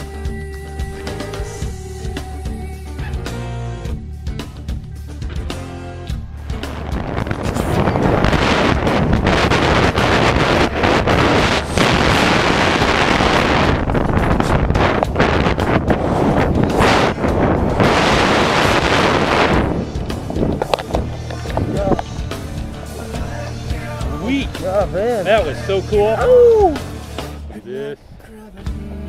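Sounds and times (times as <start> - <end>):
rushing wind on microphone: 6.1 - 26.8.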